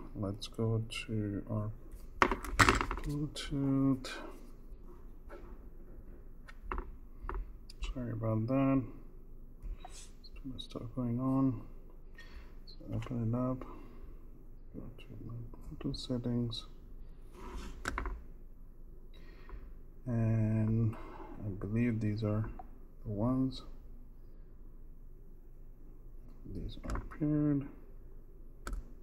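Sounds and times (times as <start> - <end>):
low room noise: 0.0 - 29.0.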